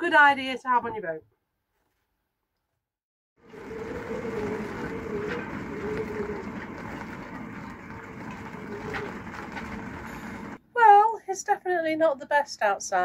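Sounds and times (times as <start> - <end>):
faint wavering hum: 3.4 - 10.6.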